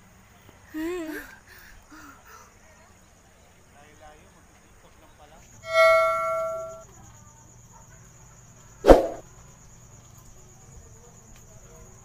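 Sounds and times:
bright chime: 0:05.6 - 0:06.8
sharp hit: 0:05.6 - 0:06.8, 0:08.9 - 0:09.2
faint high whine: 0:05.6 - 0:07.0.

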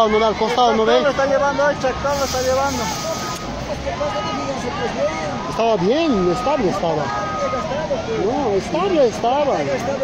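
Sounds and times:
people talking: 0:00.0 - 0:10.0
steady outdoor noise: 0:00.0 - 0:10.0.

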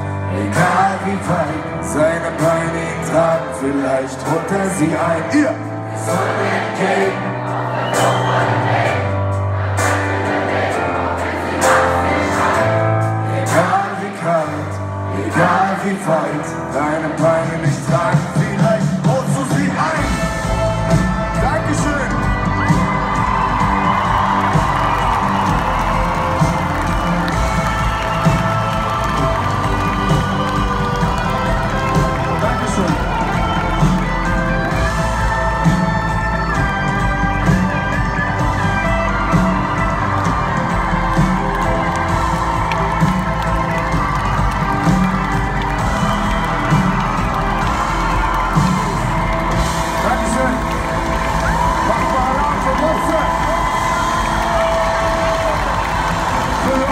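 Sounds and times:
hip-hop music over loud pa: 0:00.0 - 0:56.9
audience cheering: 0:07.0 - 0:09.1, 0:17.7 - 0:56.9.

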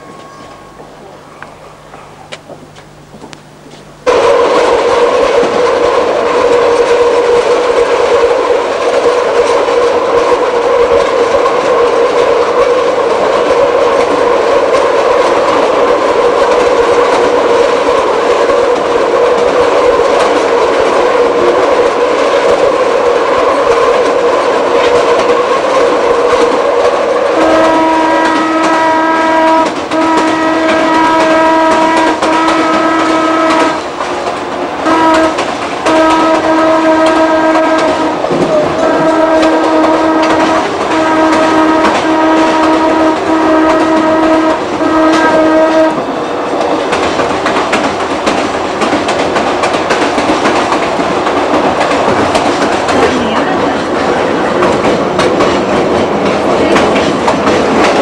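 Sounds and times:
train horn blasts: 0:00.0 - 0:02.2, 0:27.1 - 0:33.9, 0:34.8 - 0:46.4
train running on rails: 0:00.0 - 0:58.0.

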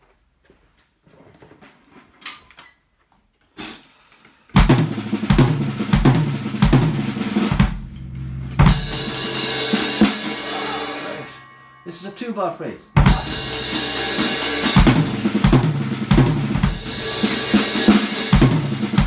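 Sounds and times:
bass drum strokes: 0:04.6 - 0:12.0, 0:12.8 - 0:19.0
jazz drum kit playing: 0:04.6 - 0:12.0, 0:12.8 - 0:19.0
cymbal crash: 0:08.6 - 0:19.0
ride cymbal strokes: 0:08.8 - 0:18.9.

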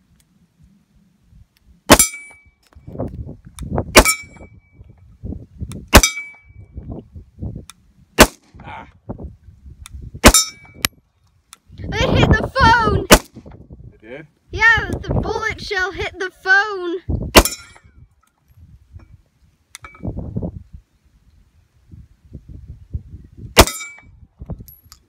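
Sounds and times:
pistol shots: 0:01.9 - 0:02.2, 0:05.9 - 0:06.3, 0:08.2 - 0:08.5, 0:13.1 - 0:13.4, 0:17.4 - 0:17.7, 0:23.6 - 0:24.0
steel plate target ringing: 0:01.9 - 0:02.6, 0:04.0 - 0:04.5, 0:05.9 - 0:06.5, 0:10.3 - 0:10.8, 0:17.4 - 0:17.9, 0:23.6 - 0:24.1.

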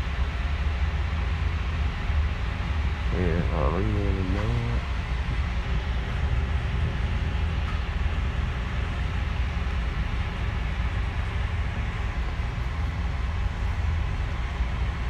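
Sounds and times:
vehicle interior road noise: 0:00.0 - 0:15.0.

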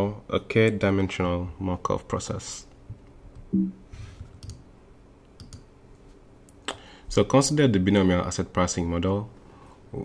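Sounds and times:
computer mouse clicks: 0:04.2 - 0:04.6, 0:05.2 - 0:05.7.

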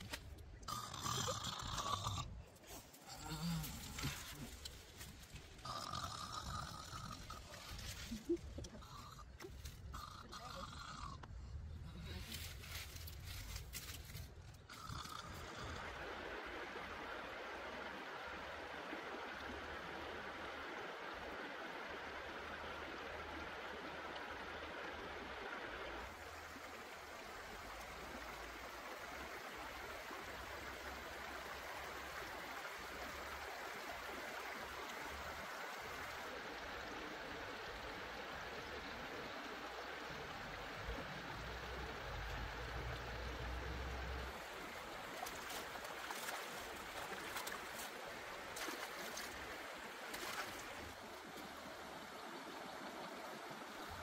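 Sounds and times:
stream water trickling over stones: 0:00.0 - 0:54.0.

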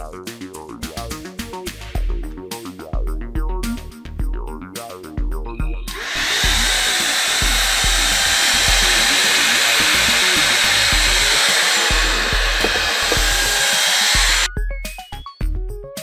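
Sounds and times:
handheld vacuum cleaner running: 0:06.0 - 0:14.5.

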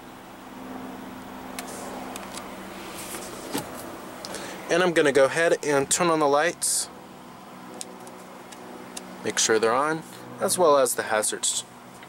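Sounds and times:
car cabin idling hum: 0:00.0 - 0:12.0.

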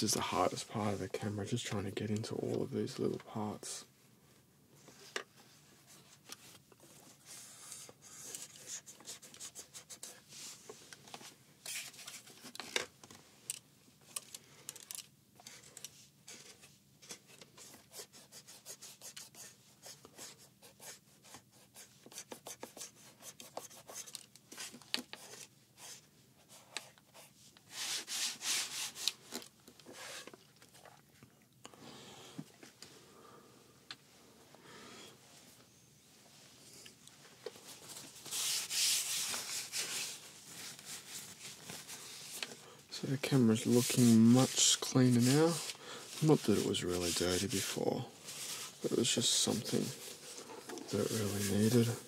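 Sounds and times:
cloth rubbing on camcorder: 0:43.3 - 0:52.0.

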